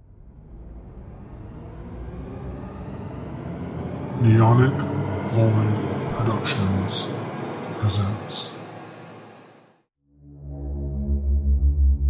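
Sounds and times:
low rumbling noise: 0:00.0 - 0:09.6.

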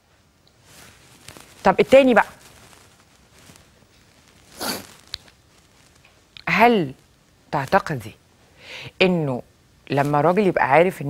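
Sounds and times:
breathy rustling noise: 0:00.6 - 0:06.0.

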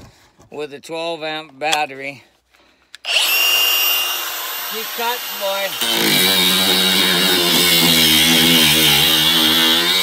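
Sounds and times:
angle grinder cutting steel: 0:03.1 - 0:10.0.

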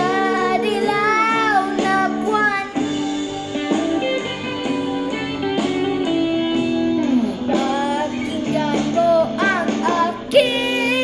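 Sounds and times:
boy singing into microphone: 0:00.0 - 0:02.9, 0:07.0 - 0:11.0
recorded guitar music: 0:00.0 - 0:11.0.

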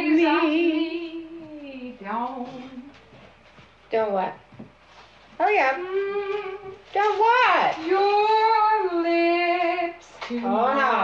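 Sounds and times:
woman singing unaccompanied: 0:00.0 - 0:03.0, 0:05.5 - 0:07.2, 0:07.8 - 0:11.0.

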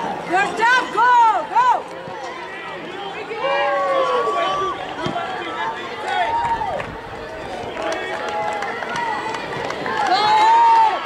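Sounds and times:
spectators shouting encouragement: 0:00.0 - 0:11.0.

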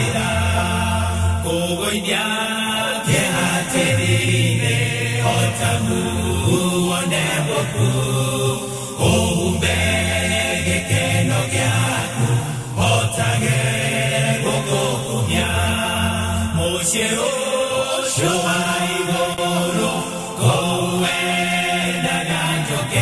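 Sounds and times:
group singing gospel song: 0:00.0 - 0:23.0.

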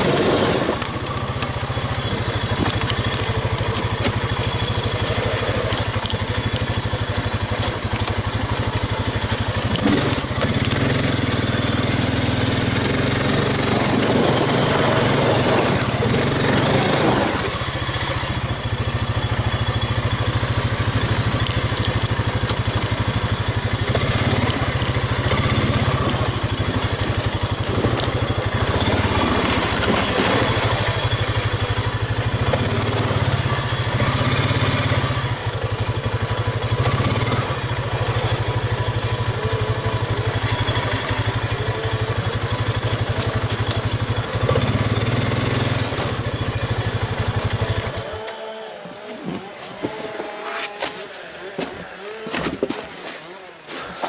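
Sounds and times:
quad bike engine running: 0:00.0 - 0:52.6.

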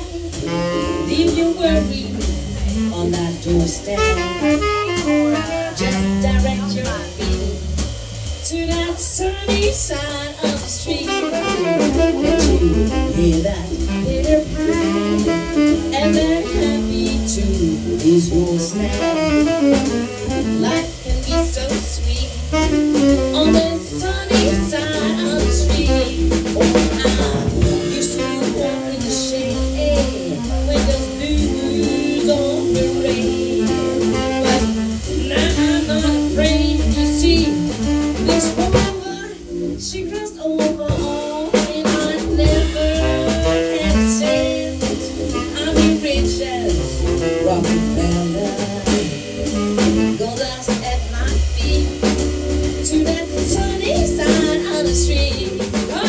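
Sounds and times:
woman singing into microphone: 0:00.0 - 0:07.5, 0:08.4 - 0:56.0
drum kit: 0:00.0 - 0:56.0
saxophone: 0:00.0 - 0:56.0.

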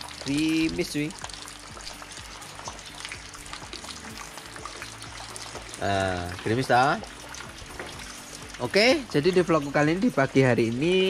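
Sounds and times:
drizzle falling on leaves: 0:00.0 - 0:11.0.

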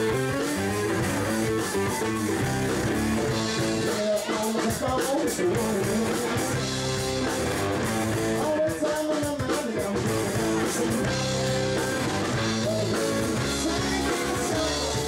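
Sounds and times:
bending electric guitar notes: 0:00.0 - 0:04.4, 0:05.6 - 0:08.4, 0:10.0 - 0:15.0
live rock band playing: 0:00.0 - 0:15.0.

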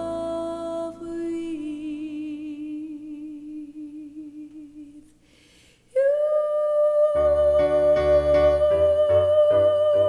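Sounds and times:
soft breath: 0:05.0 - 0:05.9
woman singing long note: 0:06.0 - 0:10.0.

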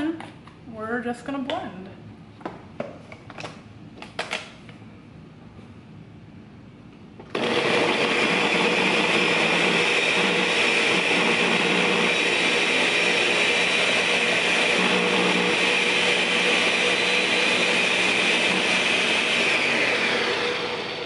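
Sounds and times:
blender running: 0:07.3 - 0:21.0.

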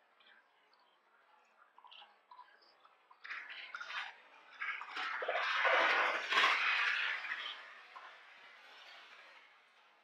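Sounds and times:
faint drips and clicks: 0:00.0 - 0:05.6.

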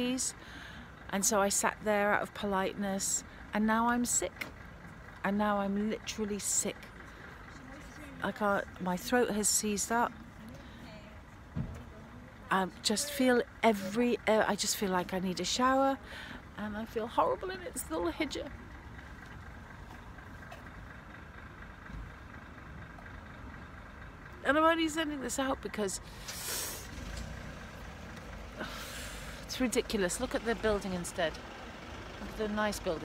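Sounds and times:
outdoor background noise: 0:00.0 - 0:33.0
road traffic rumble: 0:00.0 - 0:33.0
brief hiss: 0:26.2 - 0:27.0.

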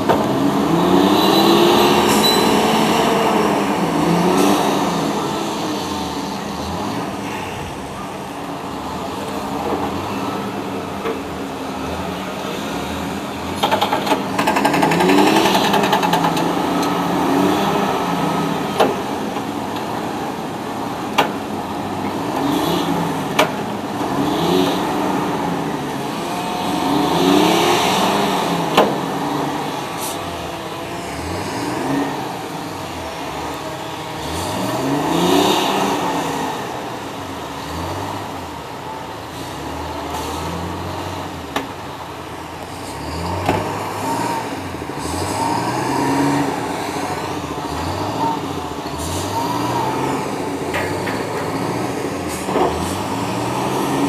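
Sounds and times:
diesel engine under changing load: 0:00.0 - 0:54.0
sharp metal clanks: 0:02.0 - 0:03.0.

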